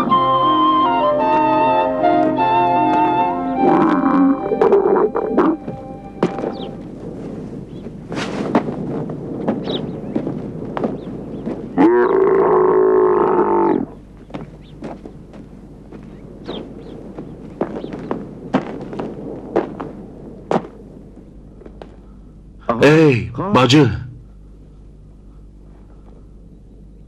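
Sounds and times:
camel calling: 0.0s - 6.8s, 11.7s - 14.0s.

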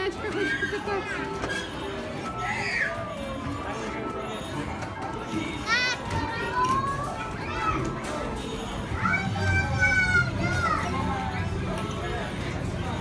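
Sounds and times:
steady background din: 0.0s - 13.0s.

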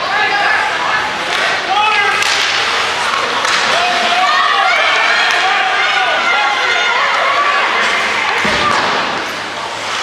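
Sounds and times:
voices shouting in ice rink: 0.0s - 10.0s.

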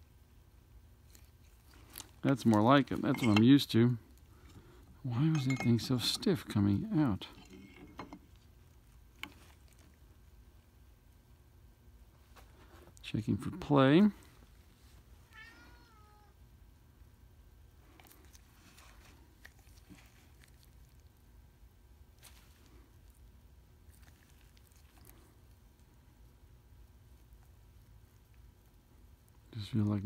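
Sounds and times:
cat meow: 15.3s - 16.4s.

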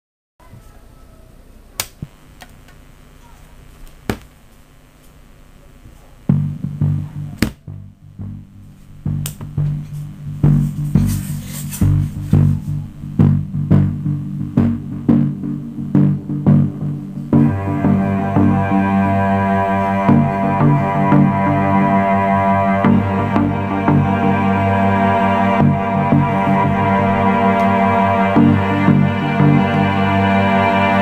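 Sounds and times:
bass-heavy electronic music on speaker: 6.3s - 31.0s.

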